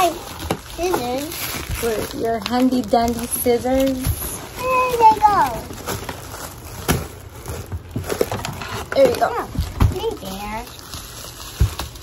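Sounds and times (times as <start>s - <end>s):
bubble wrap crinkling: 0.0s - 12.0s.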